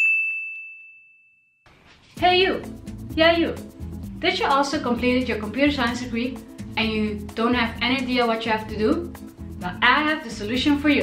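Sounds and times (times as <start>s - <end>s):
bell-like ding: 0.0s - 1.6s.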